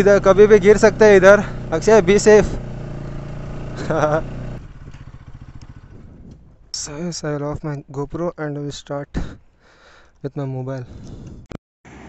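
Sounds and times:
motorcycle engine running: 0.0s - 7.6s.

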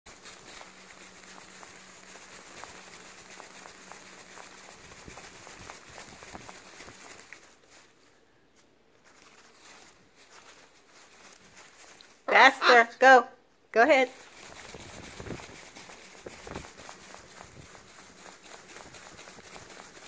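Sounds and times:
parrot wings flapping: 0.1s - 8.2s, 9.0s - 12.9s, 14.0s - 20.0s.

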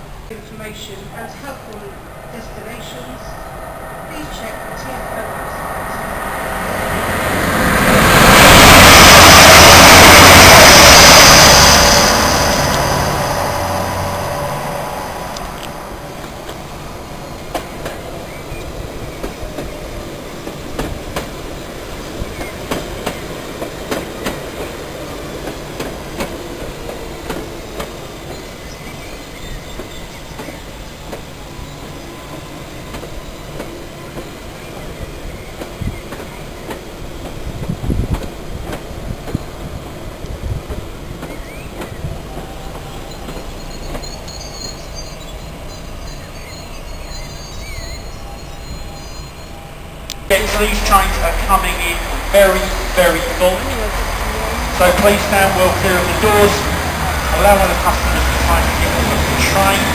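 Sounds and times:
train passing at speed: 0.0s - 59.9s
train rumbling slowly: 0.0s - 59.9s
train wheels clicking over rail joints: 17.4s - 31.4s, 32.3s - 39.6s, 40.2s - 48.1s, 50.1s - 59.9s.

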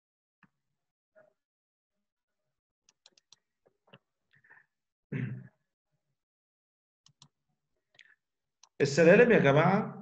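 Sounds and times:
faint computer mouse clicks: 7.0s - 7.3s.

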